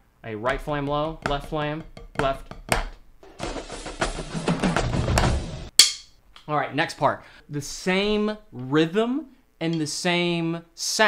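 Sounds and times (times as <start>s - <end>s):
bass drums: 0.4s - 5.7s
snare drums: 0.5s - 5.8s.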